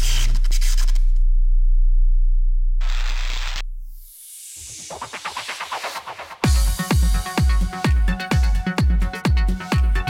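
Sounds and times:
deep synthesized bass tone: 0:00.0 - 0:04.2, 0:06.5 - 0:10.0.

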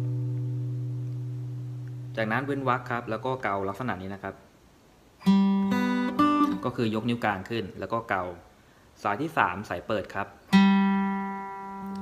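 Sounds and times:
acoustic guitar arpeggio: 0:00.0 - 0:03.0, 0:05.2 - 0:07.0, 0:10.5 - 0:12.0.

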